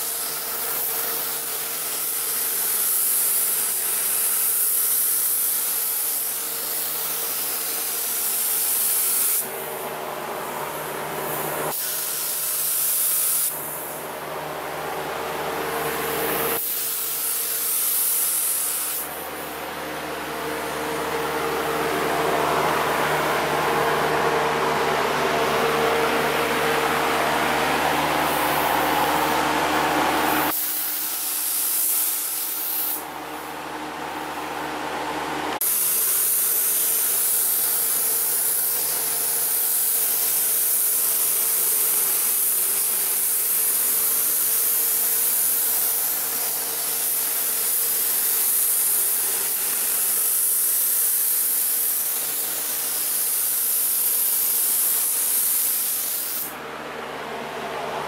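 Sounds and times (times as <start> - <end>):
spray gun hissing: 0.0 - 9.9, 10.5 - 14.0, 15.9 - 19.6, 27.9 - 33.1, 35.6 - 56.6
steady hum: 5.5 - 50.3, 51.6 - 58.0.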